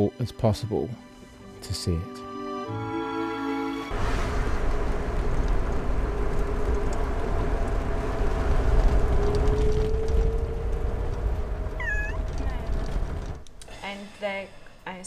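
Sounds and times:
road rumble inside moving car: 4.0s - 13.5s
cat meowing: 11.8s - 12.3s.

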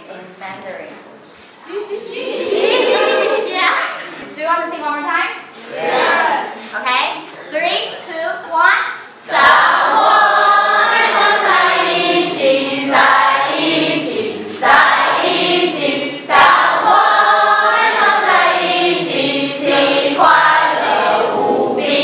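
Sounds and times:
girls singing in chorus: 9.3s - 22.0s.

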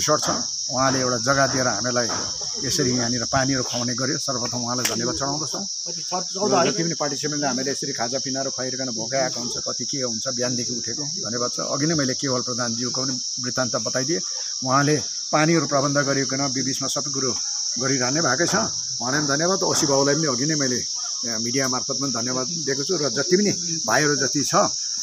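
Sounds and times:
man talking: 0.0s - 24.8s
insect chorus droning: 0.0s - 25.0s.

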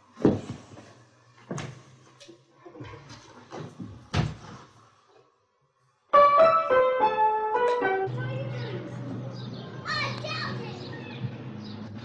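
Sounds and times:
children calling out: 9.7s - 11.3s.

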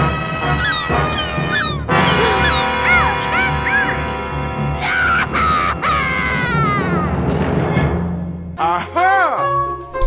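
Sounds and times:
comic crying voice wailing: 2.2s - 4.2s, 4.8s - 7.2s.

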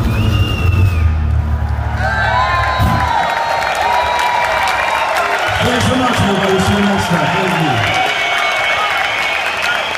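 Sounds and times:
audience cheering and whooping: 0.0s - 9.9s
audience whistling: 0.0s - 9.9s.

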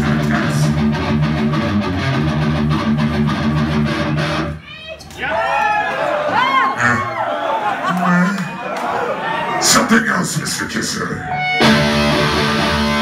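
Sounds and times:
man's amplified voice: 0.0s - 0.8s, 7.8s - 8.6s, 9.6s - 11.4s
distorted electric guitar riff: 0.0s - 4.6s, 11.3s - 13.0s.

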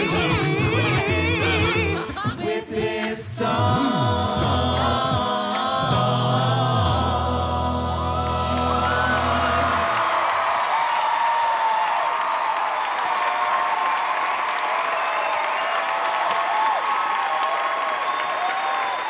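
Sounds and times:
a cappella group singing chord: 0.0s - 10.2s
audience applauding: 8.6s - 19.0s
audience shouting: 8.7s - 19.0s.

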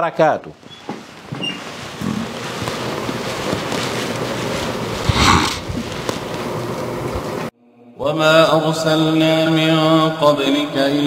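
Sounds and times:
steady wind-like rushing: 4.9s - 6.0s.

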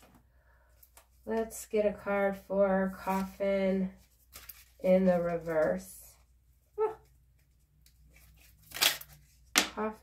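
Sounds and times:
cards rustling and ticking: 4.0s - 4.8s.

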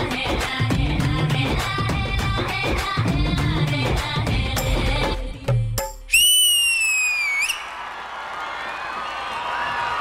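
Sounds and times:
loud high whistle: 6.1s - 7.8s
audience cheering and applause: 6.2s - 10.0s.

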